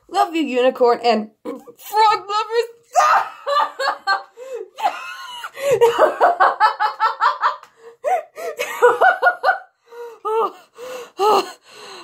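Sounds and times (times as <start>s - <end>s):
girl laughing: 3.0s - 9.7s
gasping breaths: 9.8s - 12.0s.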